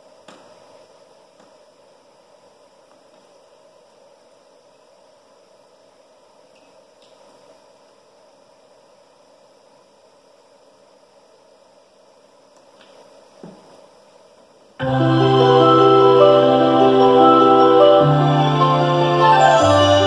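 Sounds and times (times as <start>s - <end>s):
faint hum: 0.0s - 20.0s
room noise hiss: 0.0s - 20.0s.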